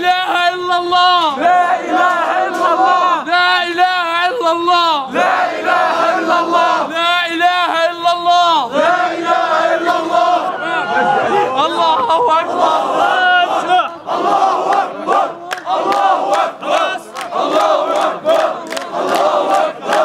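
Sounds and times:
crowd of men shouting and chanting: 0.0s - 20.0s.

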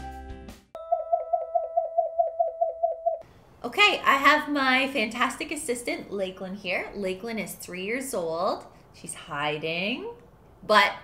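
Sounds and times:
electronic warbling tone: 0.8s - 3.2s.

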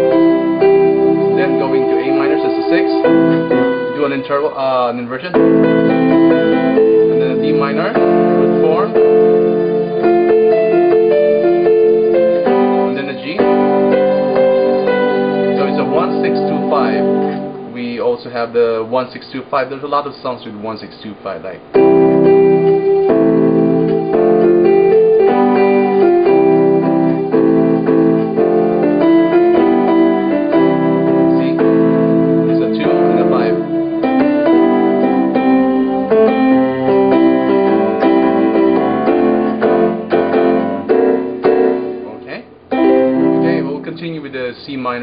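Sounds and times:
piano block chords: 0.0s - 45.0s.

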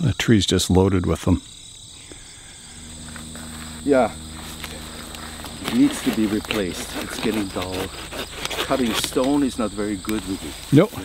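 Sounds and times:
crickets chirring: 0.0s - 11.0s
low steady hum: 1.3s - 11.0s.

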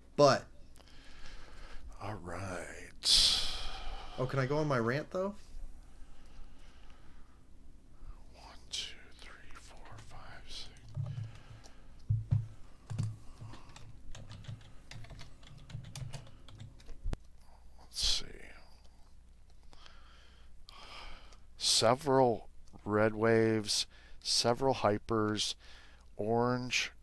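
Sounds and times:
keyboard typing: 9.8s - 17.3s.

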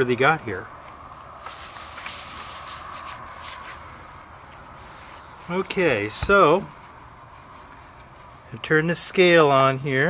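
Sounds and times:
paper rustling on carpet: 1.4s - 5.6s.

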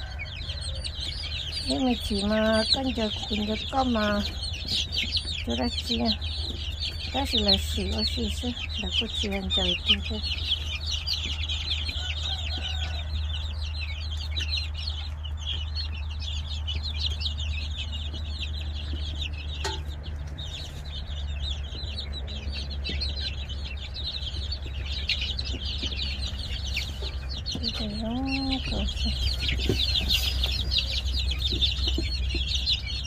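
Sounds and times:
chicks peeping: 0.0s - 33.0s.

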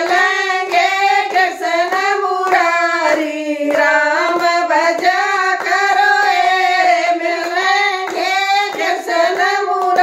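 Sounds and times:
hand claps: 0.0s - 10.0s
women singing together: 0.0s - 10.0s.

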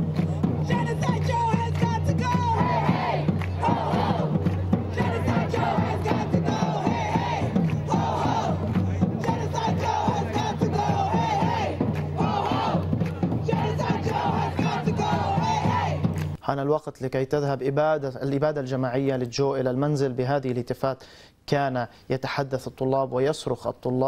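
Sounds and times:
crowd chanting a slogan: 1.9s - 16.4s.

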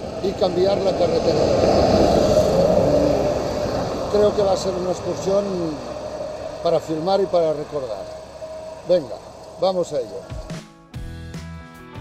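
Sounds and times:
car passing: 0.0s - 10.6s
lorry passing: 0.0s - 10.6s.

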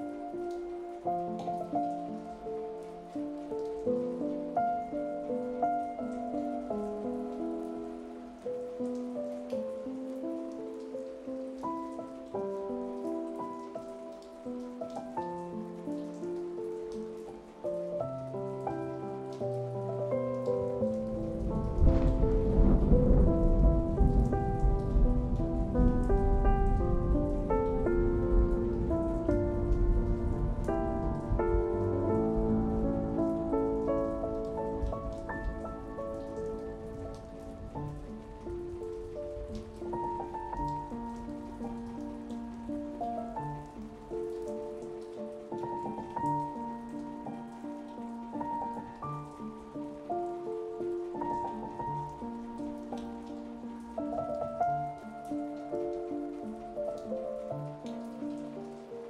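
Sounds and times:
falling rain: 0.0s - 59.0s
slow soft solo piano: 0.0s - 59.0s
deep roll of thunder: 20.8s - 42.8s.

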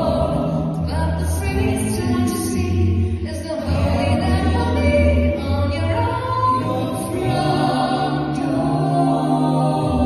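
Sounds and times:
a cappella ensemble singing chords: 0.0s - 10.0s.

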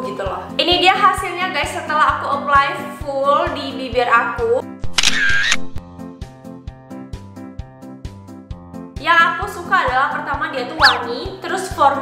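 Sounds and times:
camera shutter sound effect: 4.9s - 5.8s, 10.8s - 11.0s.

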